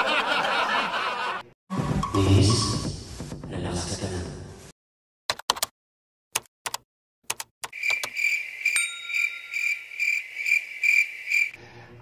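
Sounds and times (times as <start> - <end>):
cricket chirping: 7.7 - 11.6.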